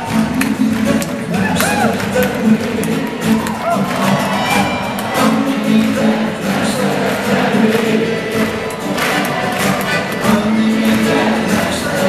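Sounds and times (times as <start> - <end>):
acoustic guitars playing: 0.0 - 12.0
audience noise: 0.0 - 12.0.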